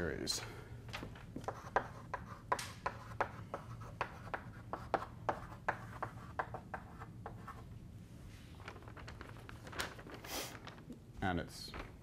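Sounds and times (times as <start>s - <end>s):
chalk tapping and scraping on blackboard: 1.3s - 7.7s.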